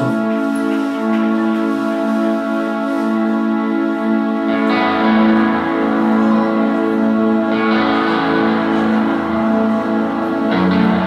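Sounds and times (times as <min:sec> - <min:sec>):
guitar: 0:00.0 - 0:11.0.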